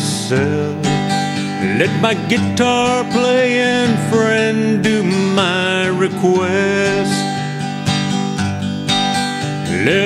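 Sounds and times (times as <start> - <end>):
person singing: 0.0 - 7.6, 9.5 - 10.0
acoustic guitar strumming: 0.0 - 10.0.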